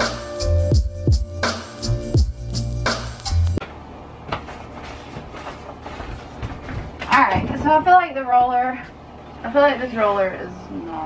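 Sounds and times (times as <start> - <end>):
paint roller scuffing on wall: 4.3 - 7.0
woman speaking: 7.1 - 11.0.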